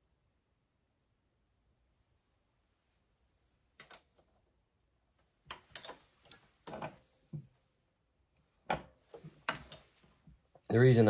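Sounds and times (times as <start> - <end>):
reloading press metallic clicks: 5.5 - 6.8.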